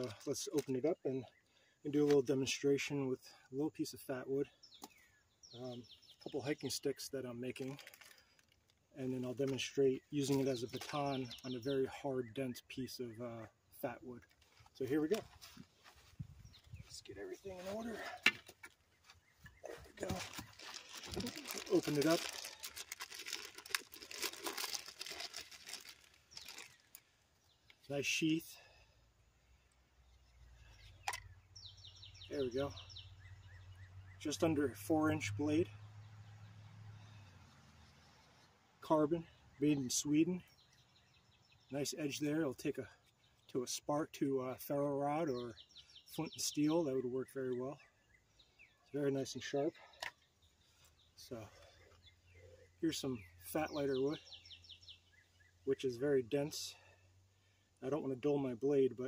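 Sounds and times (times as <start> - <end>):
packaging crinkling and rustling: 7.6 - 8.8, 19.9 - 27.1.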